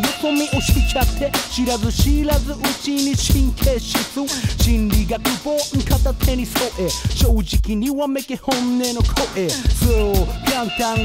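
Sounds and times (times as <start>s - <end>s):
drum beat and bass: 0.0s - 11.0s
rapping: 0.0s - 11.0s.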